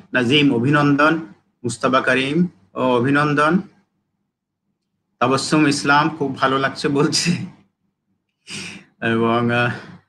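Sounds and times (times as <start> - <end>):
man speaking: 0.0 - 3.8, 5.2 - 7.7, 8.5 - 10.0.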